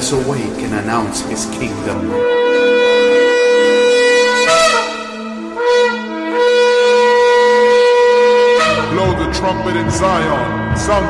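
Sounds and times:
music: 0.0 - 11.0
shofar blast: 2.0 - 11.0.

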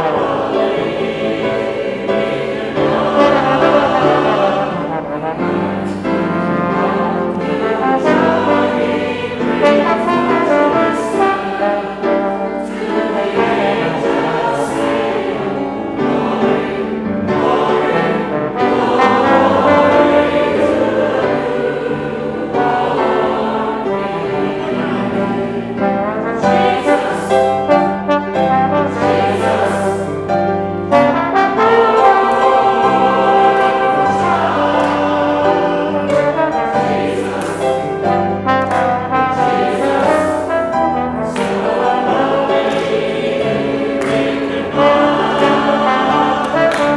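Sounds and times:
trombone: 0.0 - 1.2, 2.8 - 16.4, 17.4 - 42.6, 43.8 - 46.9
congregation singing a hymn: 0.0 - 46.9
piano: 0.0 - 46.9.

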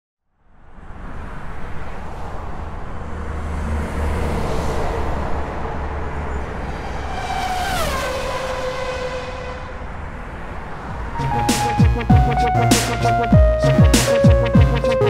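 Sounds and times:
road traffic rumble: 0.4 - 15.0
vehicle engine passing by: 0.6 - 11.2.

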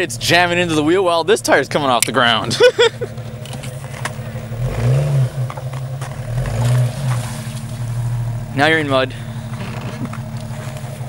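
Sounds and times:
car engine revving under load: 2.5 - 11.0.

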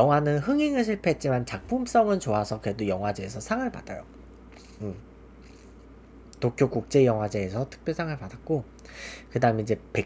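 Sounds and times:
low room hum: 0.0 - 10.0
man humming mm: 4.5 - 5.6.

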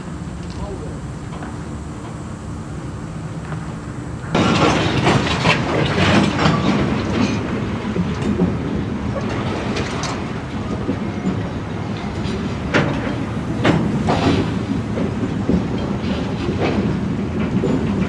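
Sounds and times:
low train rumble: 0.0 - 18.0
train wheels clattering over rail joints: 4.3 - 18.0.

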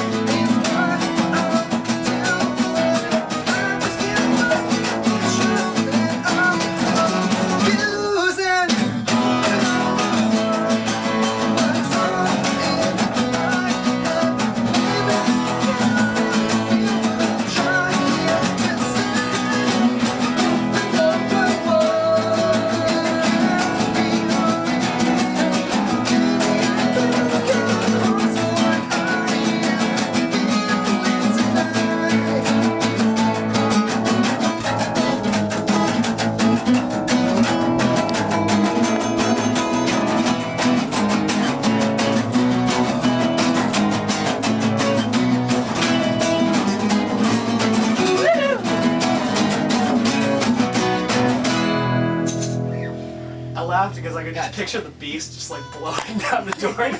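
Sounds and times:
acoustic guitars strumming: 0.0 - 56.9.

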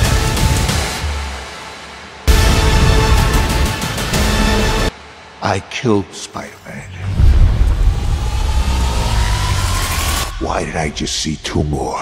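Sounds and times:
deep rumble: 6.9 - 12.0
rising riser tone: 7.1 - 10.5.

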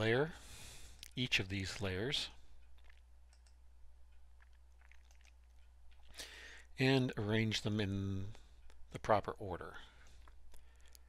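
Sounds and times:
steady low hum: 0.0 - 11.0
computer mouse clicks: 2.7 - 3.6.

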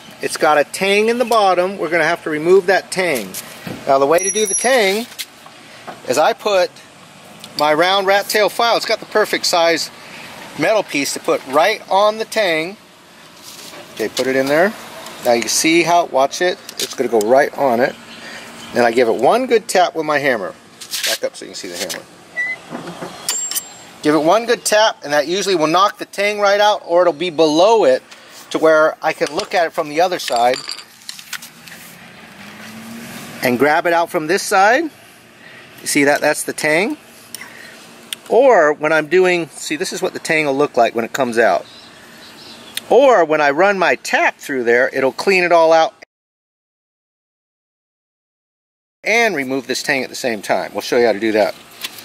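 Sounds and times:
high metallic ring: 4.2 - 5.1, 23.3 - 24.0.

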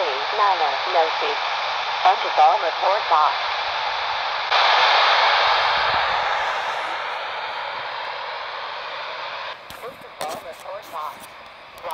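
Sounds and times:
radio receiver static hiss: 0.0 - 11.9.

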